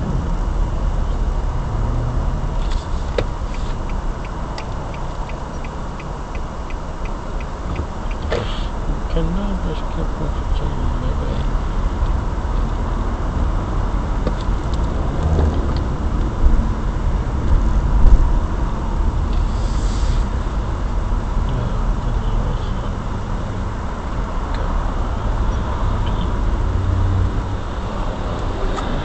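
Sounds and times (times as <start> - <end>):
car engine rumble and road noise: 0.0 - 29.0.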